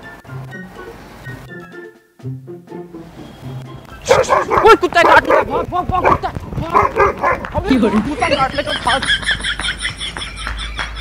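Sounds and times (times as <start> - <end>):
fake dog barking: 4.0 - 7.4.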